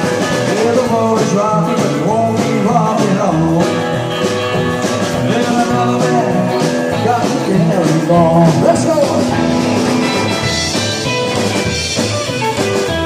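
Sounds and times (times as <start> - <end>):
rockabilly band playing: 0.0 - 13.0.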